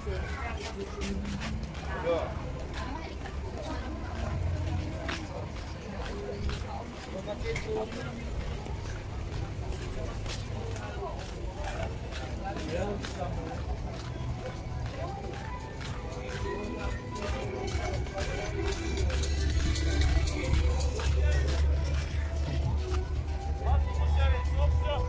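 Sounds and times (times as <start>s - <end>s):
footsteps on paving: 0.0s - 24.0s
music playing: 0.0s - 25.0s
people talking: 0.0s - 25.0s.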